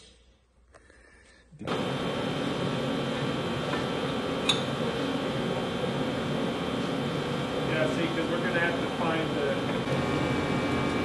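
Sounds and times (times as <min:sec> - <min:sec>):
steady mechanical hum: 0:00.0 - 0:11.0.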